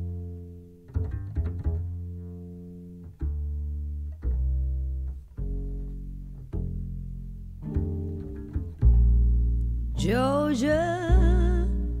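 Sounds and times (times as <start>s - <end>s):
plucked double bass: 0.0s - 12.0s.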